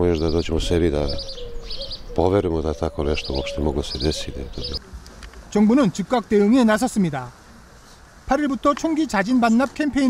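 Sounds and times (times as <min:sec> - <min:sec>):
man speaking: 0:00.0 - 0:01.2, 0:02.2 - 0:04.8, 0:05.5 - 0:07.4, 0:08.3 - 0:10.0
birds chirping: 0:00.0 - 0:10.0.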